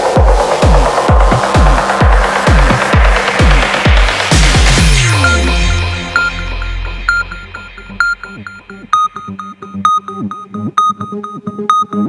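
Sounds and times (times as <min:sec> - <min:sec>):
deep bass tail: 0:00.0 - 0:10.7
plucked synthesizer arpeggio: 0:00.0 - 0:12.0.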